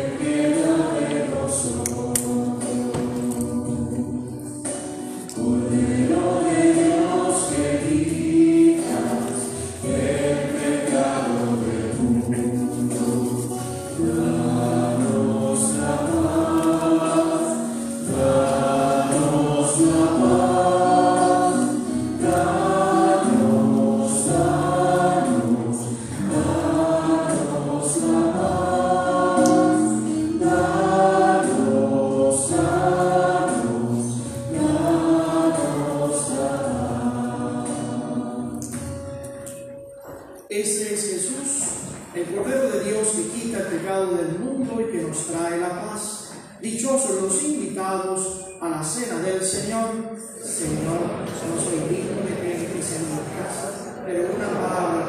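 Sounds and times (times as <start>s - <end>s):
church choir singing a hymn: 0.0s - 39.5s, 50.2s - 55.0s.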